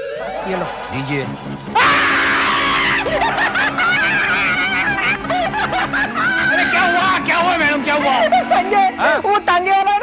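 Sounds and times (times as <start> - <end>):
people laughing: 0.3 - 9.3.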